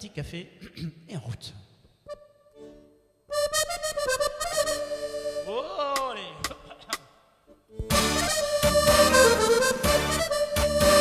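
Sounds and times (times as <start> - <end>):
accordion playing chords: 2.0 - 6.6, 7.5 - 11.0.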